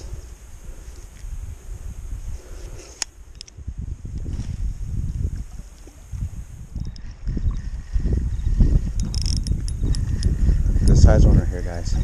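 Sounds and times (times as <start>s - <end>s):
spinning reel being cranked: 8.9s - 11.0s
sharp reel clicks: 9.0s - 10.3s.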